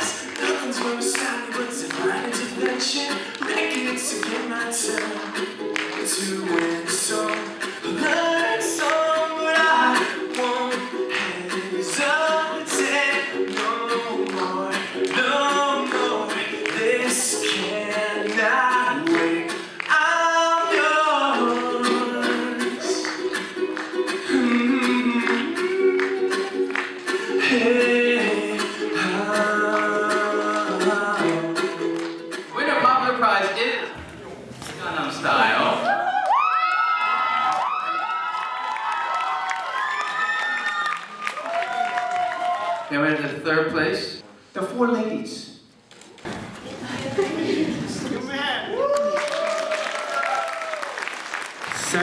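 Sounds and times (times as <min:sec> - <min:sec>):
song with lead vocal: 0:00.0 - 0:32.6.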